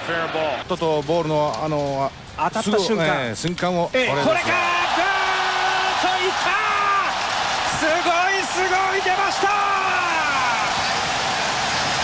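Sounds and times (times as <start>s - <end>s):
stadium crowd cheering: 0.0s - 0.7s, 4.0s - 12.0s.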